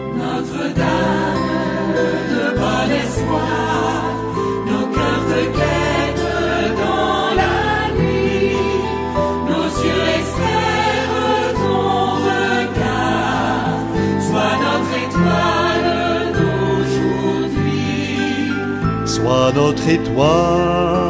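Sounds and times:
choir singing a hymn: 0.0 - 21.0
sustained instrumental accompaniment: 0.0 - 21.0.

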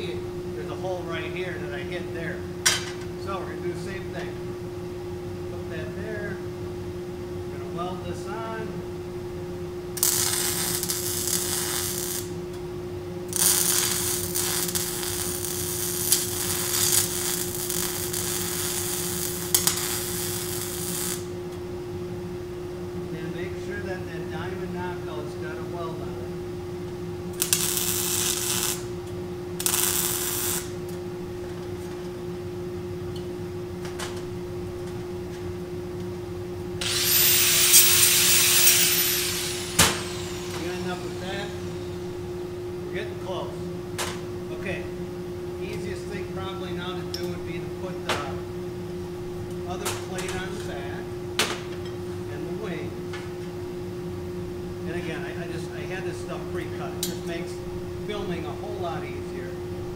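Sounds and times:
steady hum: 0.0 - 59.9
welding arc crackling and hissing: 10.0 - 12.4, 13.3 - 21.4, 27.3 - 28.9, 29.6 - 30.8, 36.8 - 42.3.

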